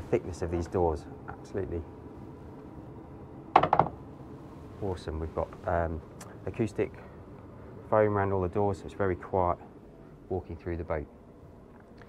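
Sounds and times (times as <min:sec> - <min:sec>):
door knocks: 0:03.6 - 0:04.0.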